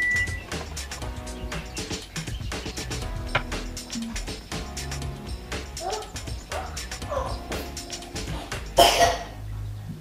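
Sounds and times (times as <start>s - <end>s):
quiet background music: 0.0s - 10.0s
woman coughing: 8.8s - 9.4s.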